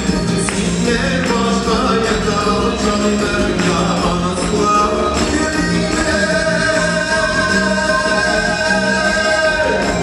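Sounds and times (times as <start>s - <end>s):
live band with steady beat: 0.0s - 10.0s.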